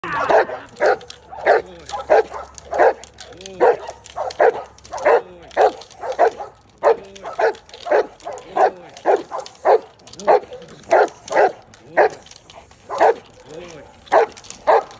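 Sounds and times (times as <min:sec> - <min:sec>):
dog barking deeply: 0:00.2 - 0:14.9.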